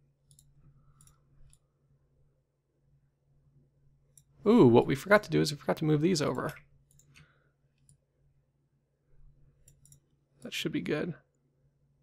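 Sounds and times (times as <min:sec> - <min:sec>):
faint computer mouse clicks: 0:00.2 - 0:01.6, 0:09.6 - 0:10.0.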